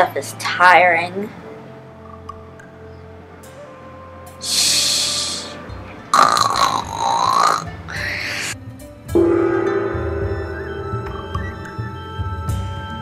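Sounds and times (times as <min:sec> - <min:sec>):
background music: 0:00.0 - 0:13.0
child groaning tiredly: 0:06.6 - 0:08.6
gong struck and ringing: 0:09.1 - 0:13.0.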